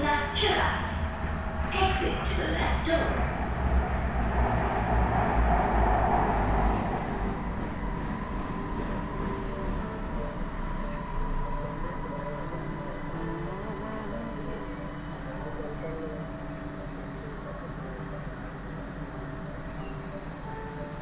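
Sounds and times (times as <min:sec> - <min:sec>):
metro train rumbling inside carriage: 0:00.0 - 0:21.0
faint whine: 0:07.2 - 0:21.0.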